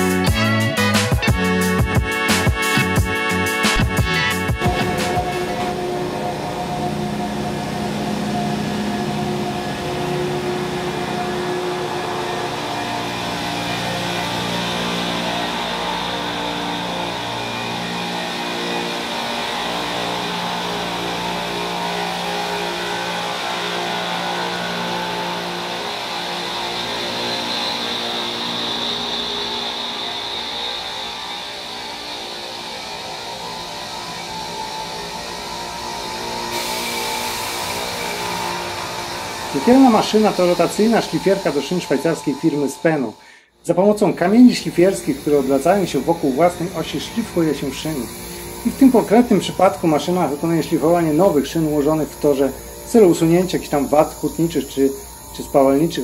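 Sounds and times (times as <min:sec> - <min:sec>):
background music of held notes: 0:00.0 - 0:09.7
rail grinding train grinding: 0:01.3 - 0:56.0.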